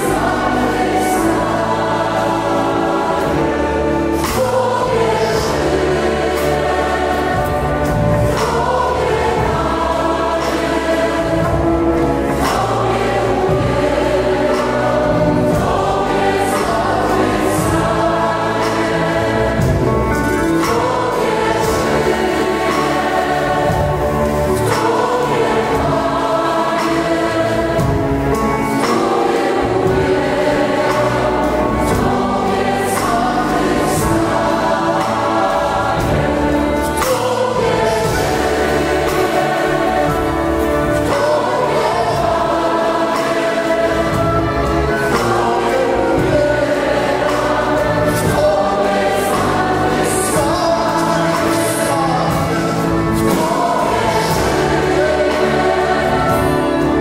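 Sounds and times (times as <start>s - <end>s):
choir singing: 0.0s - 57.0s
drums: 0.0s - 57.0s
keyboard: 0.0s - 57.0s
strings: 0.0s - 57.0s.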